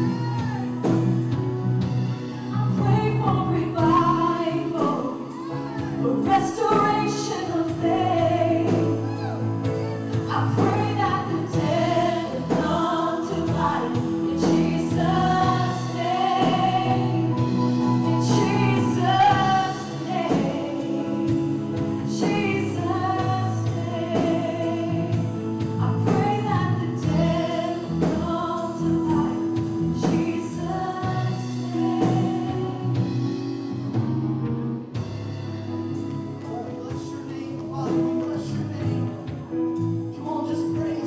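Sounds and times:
keyboard: 0.0s - 41.0s
singers singing together: 2.7s - 33.1s.

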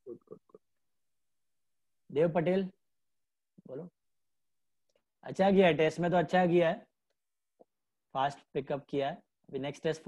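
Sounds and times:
person's voice over video call: 0.0s - 0.8s, 1.9s - 4.1s, 4.9s - 10.0s.

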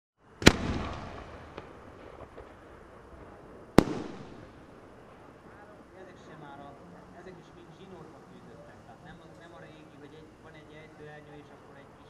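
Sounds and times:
firework launch bang: 0.4s - 5.5s
firework shell bursting: 0.4s - 5.6s.

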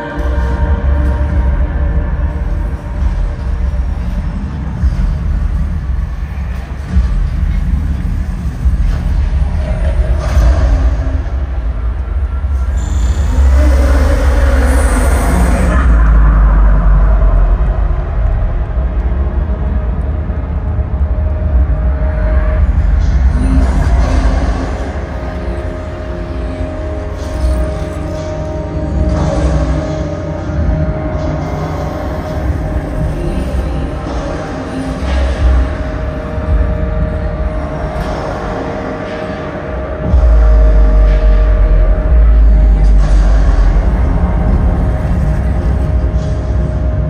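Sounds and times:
concert music over sound system: 0.0s - 47.0s.

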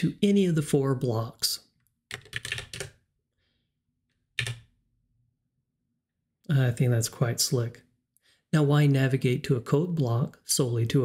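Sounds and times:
computer keyboard keystrokes: 2.1s - 3.0s, 4.4s - 4.7s.

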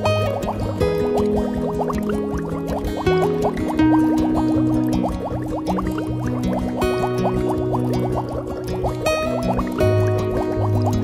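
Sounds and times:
bubble-like blips: 0.0s - 11.0s.

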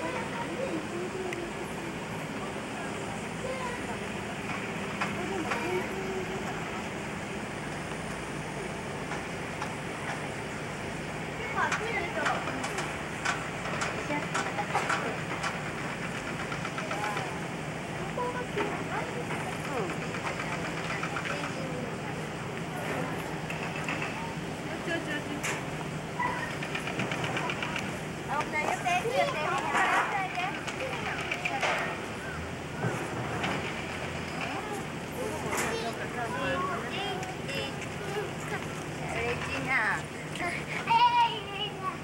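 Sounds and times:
indistinct voices: 0.0s - 42.0s.

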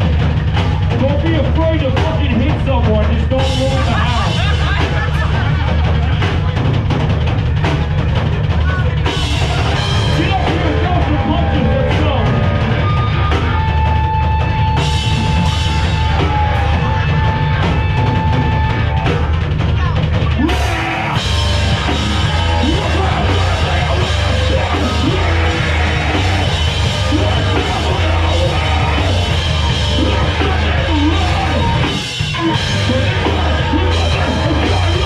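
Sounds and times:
distorted electric guitar: 0.0s - 35.0s
pounding drums: 0.0s - 35.0s
punk band playing live: 0.0s - 35.0s.

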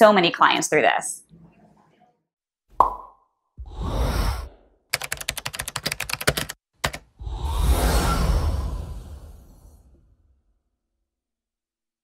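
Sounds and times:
whoosh: 7.2s - 10.6s.

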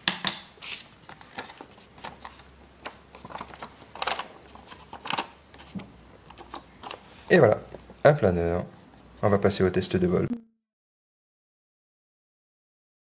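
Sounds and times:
paper rustling and crackling: 0.6s - 7.1s.

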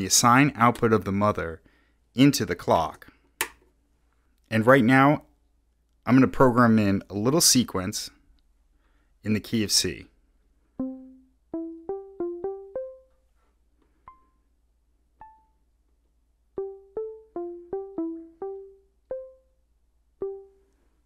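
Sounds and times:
synthesizer plucked notes: 10.8s - 13.2s, 14.1s - 14.4s, 15.2s - 15.6s, 16.6s - 19.6s, 20.2s - 20.7s.

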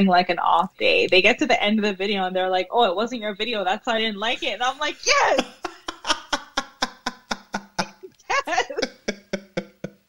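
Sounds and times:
people laughing: 4.4s - 9.9s.

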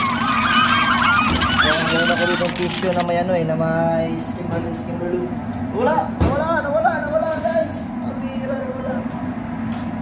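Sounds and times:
flock of birds honking: 0.0s - 2.6s.

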